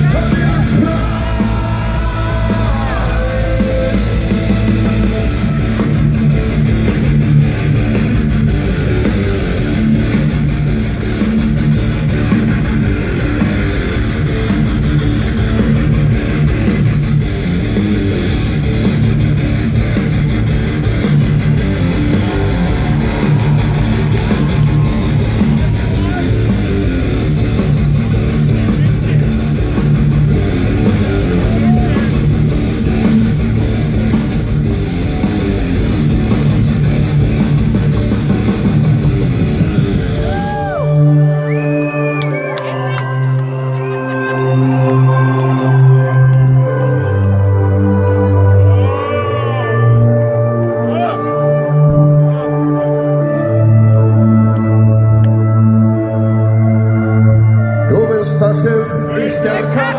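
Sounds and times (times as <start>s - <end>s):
steady drumbeat: 0.0s - 40.7s
distorted electric guitars: 0.0s - 57.6s
bass guitar: 0.0s - 59.9s.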